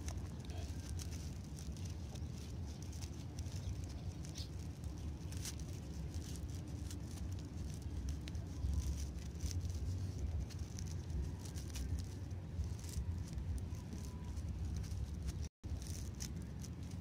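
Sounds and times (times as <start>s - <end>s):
rope rustling and clicking: 0.0s - 17.0s
steady low rumble: 0.0s - 17.0s.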